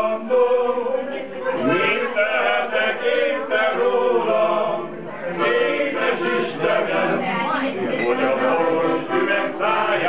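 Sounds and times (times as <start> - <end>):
men's choir singing: 0.0 - 10.0.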